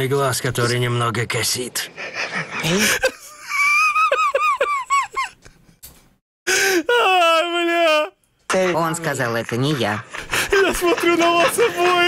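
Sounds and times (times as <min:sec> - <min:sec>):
man laughing in squeals: 0:02.6 - 0:05.4, 0:06.6 - 0:08.1, 0:10.2 - 0:12.0
breathy gasp: 0:06.5 - 0:06.9.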